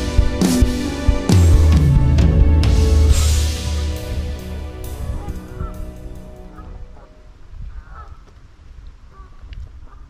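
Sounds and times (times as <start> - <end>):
background music: 0.0 - 7.6
geese honking: 2.7 - 8.4.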